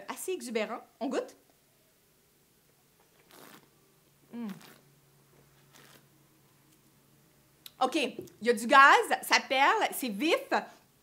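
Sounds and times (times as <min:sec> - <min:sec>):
wine slurping: 0:03.2 - 0:03.7, 0:04.4 - 0:04.8
person murmuring mm: 0:04.3 - 0:04.8.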